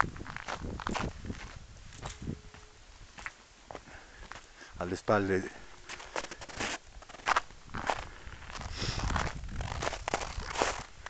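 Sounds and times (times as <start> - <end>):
footsteps crunching in snow: 0.0 - 4.5, 5.3 - 11.0.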